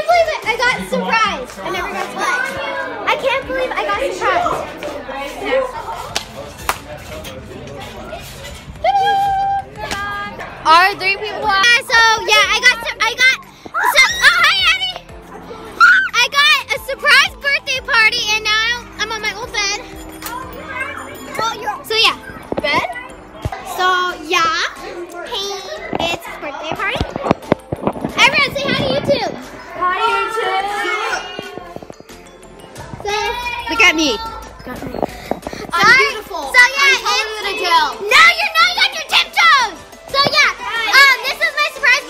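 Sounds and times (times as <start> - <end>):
children talking and calling out: 0.0 - 6.3, 7.6 - 42.0
girls squealing and calling out: 12.2 - 15.1, 15.7 - 17.1, 28.2 - 31.8.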